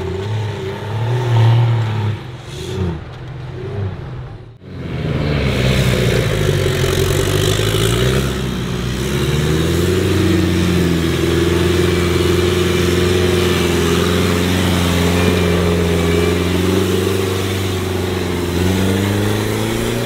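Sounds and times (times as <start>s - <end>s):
buggy engine revving: 0.0s - 20.0s
tyres on loose dirt: 0.0s - 20.0s.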